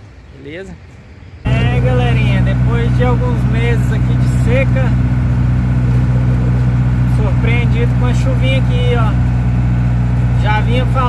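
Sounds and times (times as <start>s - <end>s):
diesel truck engine droning: 1.4s - 11.0s.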